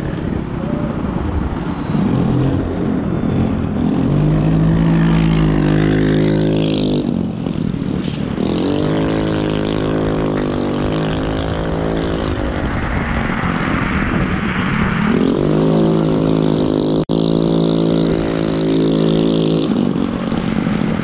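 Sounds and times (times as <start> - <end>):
vehicle motor running: 0.0 - 21.0
rushing noise: 7.3 - 21.0.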